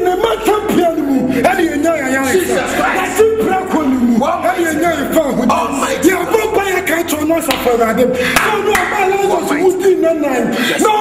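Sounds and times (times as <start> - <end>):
man preaching loudly: 0.0 - 11.0
sharp hand claps: 8.3 - 9.0.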